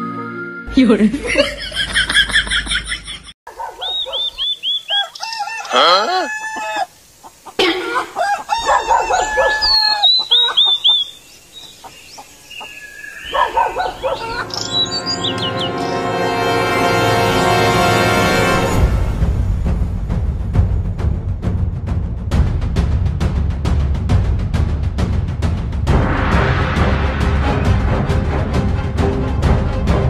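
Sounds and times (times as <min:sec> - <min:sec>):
music: 0:00.0 - 0:01.4, 0:14.0 - 0:30.0
chickens clucking: 0:03.5 - 0:15.5
rooster crowing: 0:03.6 - 0:07.0, 0:07.8 - 0:11.0.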